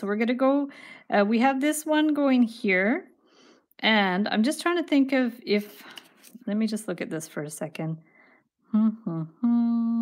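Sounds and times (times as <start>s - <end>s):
woman humming: 8.7s - 10.0s.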